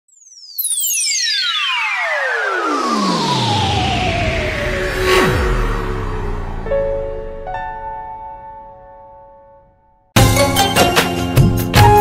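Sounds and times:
synthesized falling tones: 0.3 - 10.0
rushing noise: 2.4 - 9.2.

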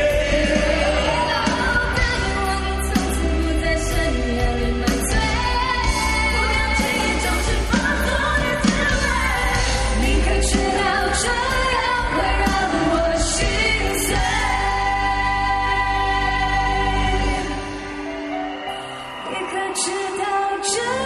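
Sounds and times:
pop band with singers: 0.0 - 21.0.

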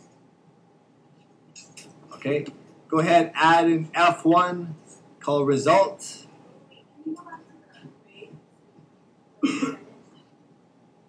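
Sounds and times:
person coughing: 9.4 - 9.9.

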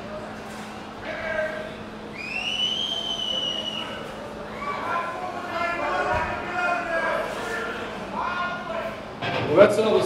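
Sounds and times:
loud high whistle: 2.1 - 4.1.

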